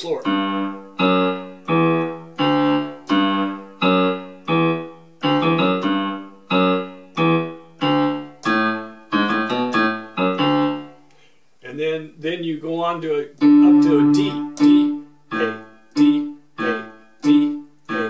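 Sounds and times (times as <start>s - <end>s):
slow low keyboard notes: 0.0s - 11.0s, 13.3s - 18.0s.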